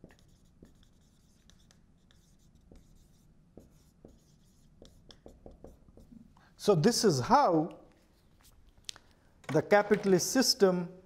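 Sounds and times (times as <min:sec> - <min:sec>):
marker writing on whiteboard: 0:00.0 - 0:06.4.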